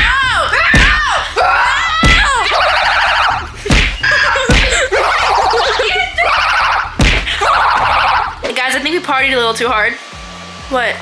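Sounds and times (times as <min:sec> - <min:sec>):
children shrieking and squealing: 0:00.0 - 0:08.4
pillows thumping: 0:01.9 - 0:05.4, 0:07.0 - 0:08.1.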